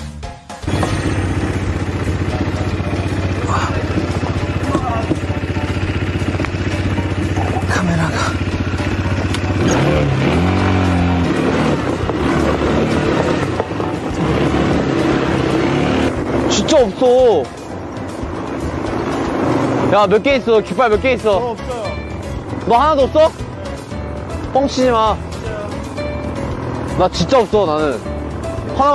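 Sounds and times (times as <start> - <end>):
quad bike engine running: 0.6 - 28.9.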